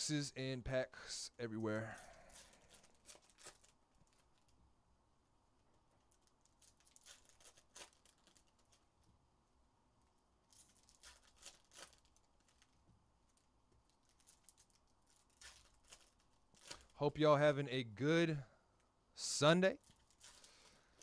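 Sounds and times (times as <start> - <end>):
cards and wrappers rustling: 1.8 - 4.6, 6.0 - 9.1, 10.5 - 17.1, 19.8 - 21.0.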